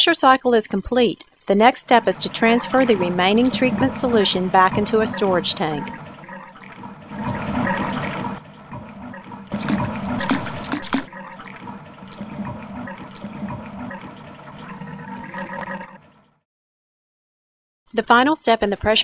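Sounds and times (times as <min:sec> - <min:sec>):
water gushing: 0:00.2 - 0:14.4
liquid rushing and draining: 0:01.2 - 0:16.1.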